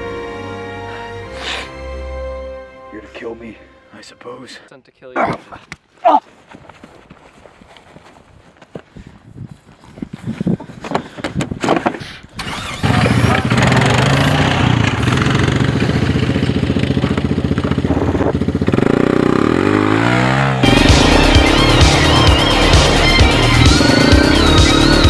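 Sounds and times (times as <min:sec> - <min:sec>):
atv engine running: 0:12.4 - 0:25.0
electronic music with wobbling synth: 0:20.6 - 0:25.0.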